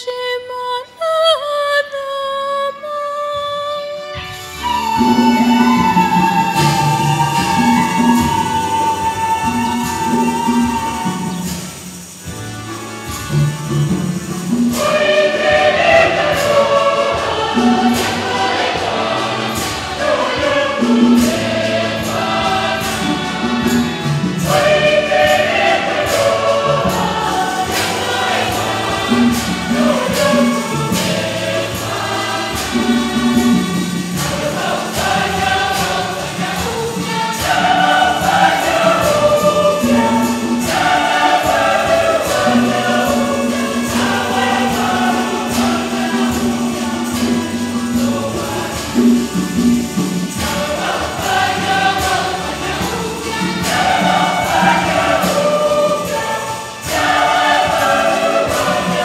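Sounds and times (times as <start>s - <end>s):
light percussion beat: 4.3s - 59.0s
church choir singing a hymn: 4.5s - 59.0s.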